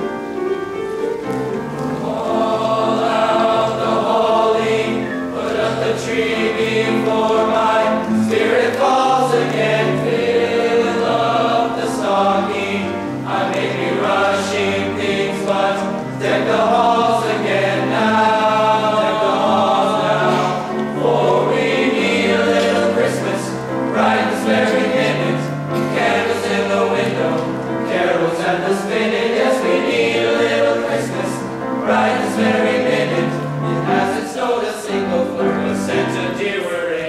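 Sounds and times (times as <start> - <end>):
piano accompaniment: 0.0 - 37.0
male choir singing in harmony: 1.6 - 37.0.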